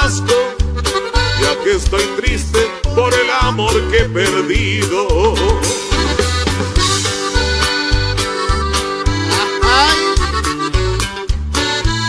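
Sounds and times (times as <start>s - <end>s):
accordion melody: 0.0s - 12.0s
bass line: 0.0s - 12.0s.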